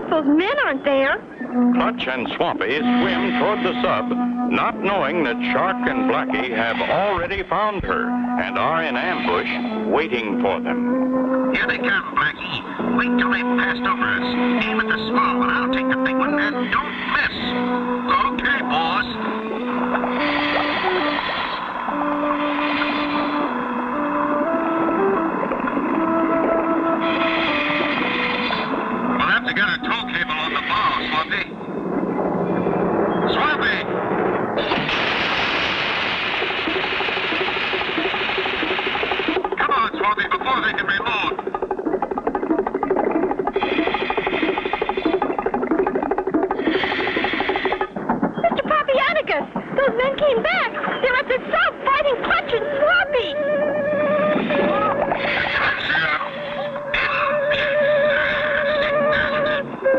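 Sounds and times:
cartoon background music: 0.6 - 31.5, 36.4 - 59.9
hissing rush sound effect: 31.2 - 49.8.

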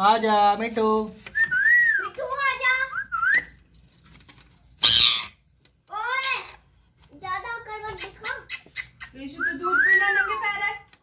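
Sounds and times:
parakeet squawk: 4.8 - 5.4.

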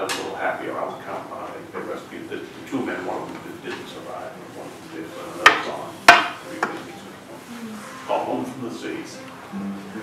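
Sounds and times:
sharp knocks: 5.4 - 6.8.

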